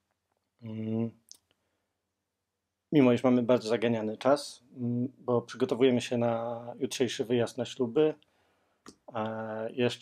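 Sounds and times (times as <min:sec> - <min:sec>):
man speaking: 0:00.6 - 0:01.4, 0:02.9 - 0:08.2, 0:08.9 - 0:10.0.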